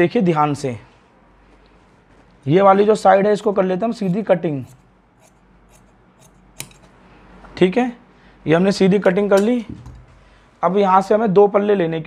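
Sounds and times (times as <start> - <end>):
shears snipping fabric: 3.3 - 7.0.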